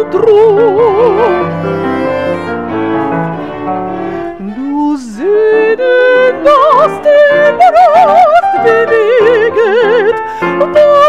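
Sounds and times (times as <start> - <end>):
soprano singing with vibrato: 0.0 - 1.7, 4.4 - 11.0
bowed string instrument: 0.0 - 11.0
grand piano: 0.0 - 11.0.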